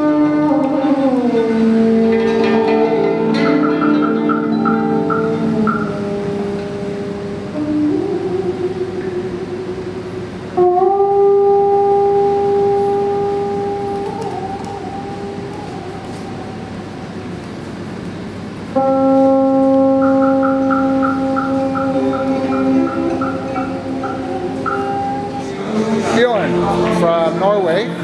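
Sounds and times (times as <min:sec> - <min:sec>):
monochord bending notes: 0:00.0 - 0:28.0.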